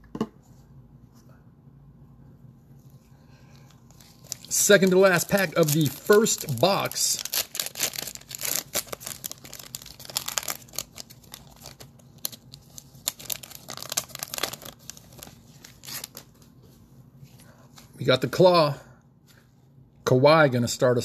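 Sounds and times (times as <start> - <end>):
foil wrapper tearing and crinkling: 3.9 - 16.3.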